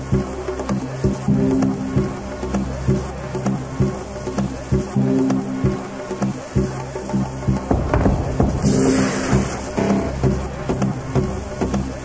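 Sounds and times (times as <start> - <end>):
synth bass notes: 0.0 - 12.0
kick drum: 7.5 - 8.8.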